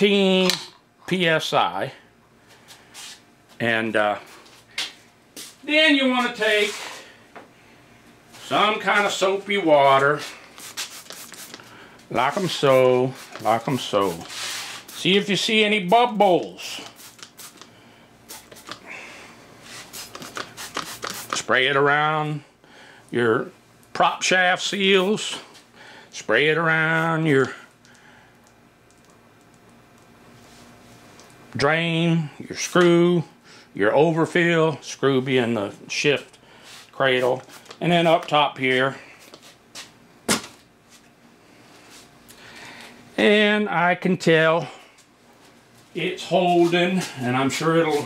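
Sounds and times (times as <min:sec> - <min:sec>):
spray bottle squirting: 0:10.6 - 0:11.7, 0:16.8 - 0:17.7, 0:18.3 - 0:18.8, 0:19.7 - 0:21.4.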